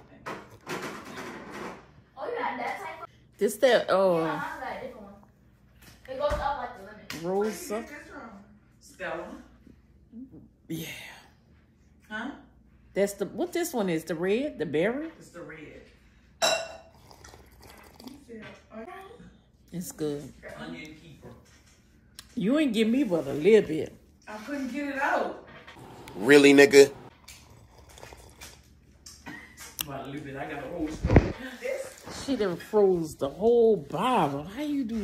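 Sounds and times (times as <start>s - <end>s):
person slurping a drink: 16.8s - 18.2s, 25.8s - 28.8s
quiet sipping: 16.8s - 18.3s, 25.7s - 29.8s.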